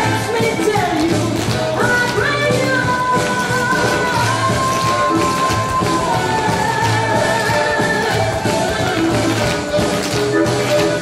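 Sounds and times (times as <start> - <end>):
dance music: 0.0 - 11.0
heeled shoes tapping on stage: 0.0 - 11.0.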